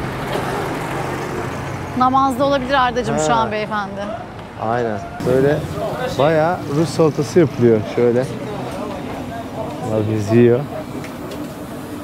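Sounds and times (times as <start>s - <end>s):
street traffic hum: 0.0s - 12.0s
faint voices: 2.8s - 11.4s.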